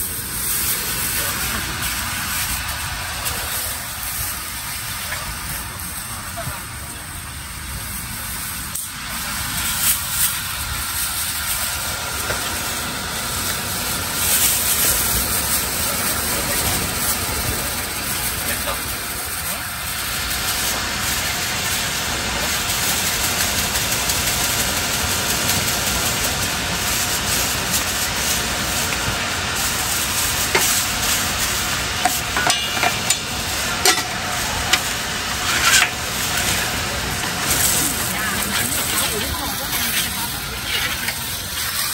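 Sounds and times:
food sizzling: 0:00.0 - 0:41.9
background voices: 0:25.4 - 0:41.9
utensils clinking: 0:32.0 - 0:41.9.

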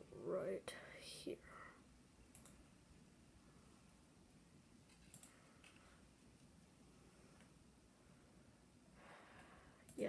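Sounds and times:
computer mouse clicks: 0:02.3 - 0:02.6, 0:04.9 - 0:05.9.

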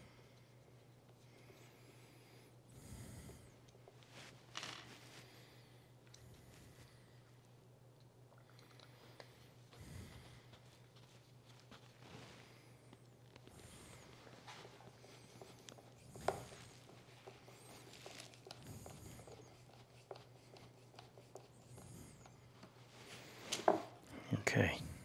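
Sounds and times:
low steady hum: 0:00.0 - 0:25.0.

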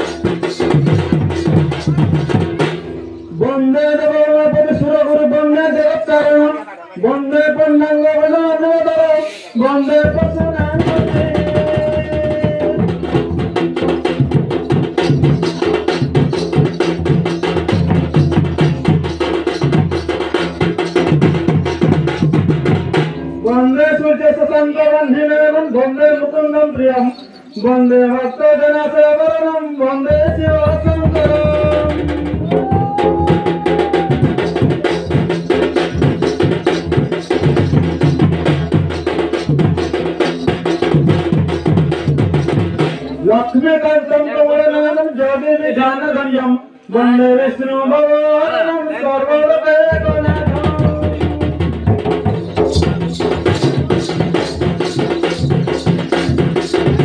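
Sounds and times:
dhol drum fast rhythm: 0:00.0 - 0:45.2, 0:49.8 - 0:57.0.

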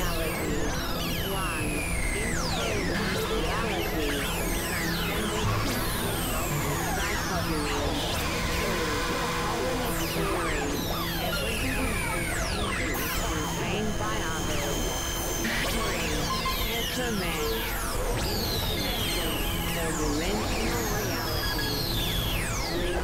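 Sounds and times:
experimental electronic music: 0:00.0 - 0:23.0.

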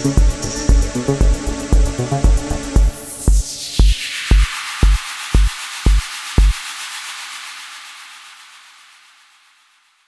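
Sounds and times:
electronic kick drum beats: 0:00.0 - 0:07.6.

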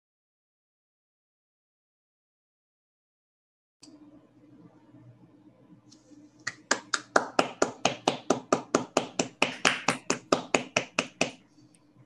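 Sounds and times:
hand clapping: 0:06.4 - 0:11.4.

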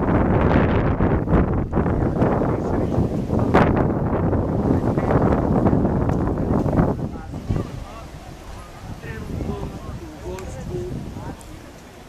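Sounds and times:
wind buffeting microphone: 0:00.0 - 0:12.0.

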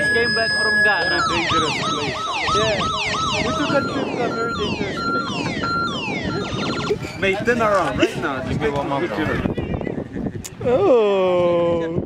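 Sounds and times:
electronic siren warbling: 0:00.0 - 0:07.2
short beeps: 0:00.0 - 0:07.4.

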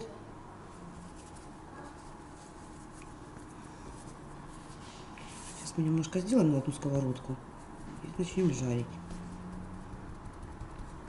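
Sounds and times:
hands shaping dough: 0:00.6 - 0:11.0.

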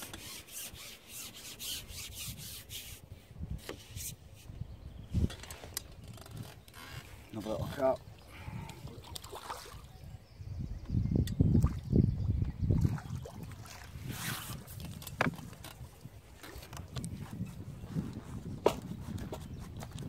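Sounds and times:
water splashing: 0:08.8 - 0:09.9.

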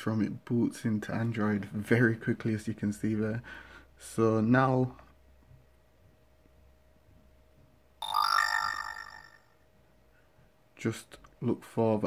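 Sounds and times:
smartphone notification chime: 0:08.0 - 0:09.5.

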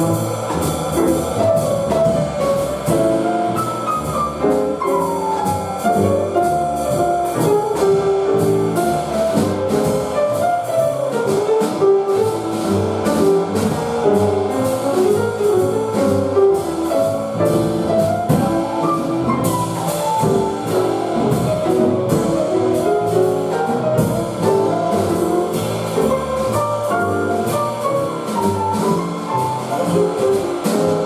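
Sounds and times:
acoustic piano: 0:00.0 - 0:31.0
drum kit with ride cymbal: 0:00.0 - 0:31.0
upright bass: 0:00.0 - 0:31.0.

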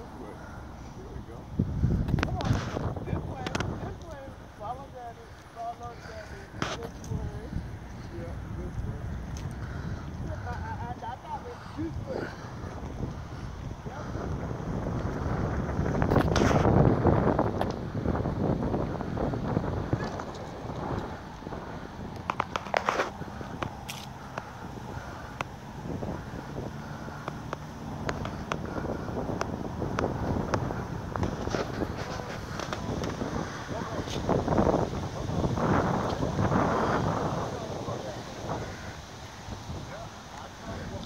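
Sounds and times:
wind buffeting microphone: 0:00.0 - 0:41.0.

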